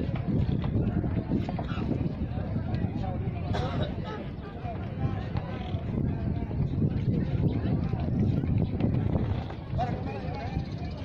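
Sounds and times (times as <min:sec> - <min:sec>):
people talking: 0:00.0 - 0:11.0
wind buffeting microphone: 0:00.0 - 0:11.0.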